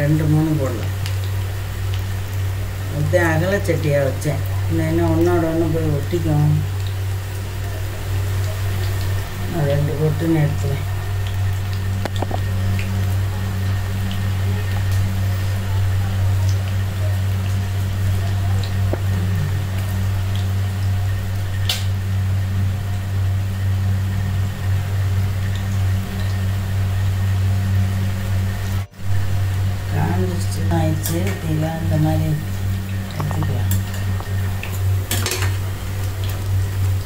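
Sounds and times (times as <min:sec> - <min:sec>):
food deep-frying in hot oil: 0:00.0 - 0:37.0
loud steady low hum: 0:00.0 - 0:37.0.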